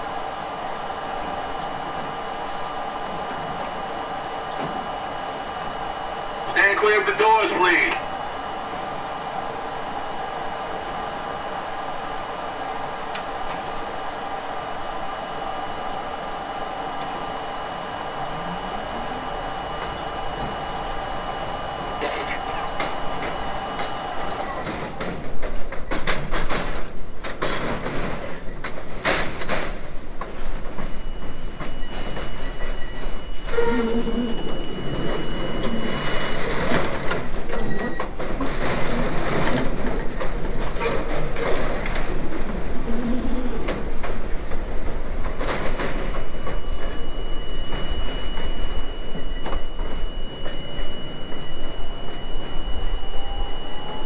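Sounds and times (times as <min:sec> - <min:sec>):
train motor whine: 0:00.0 - 0:26.8, 0:28.2 - 0:54.0
subway train humming: 0:00.0 - 0:54.0
train wheels clattering over rails: 0:24.3 - 0:31.0.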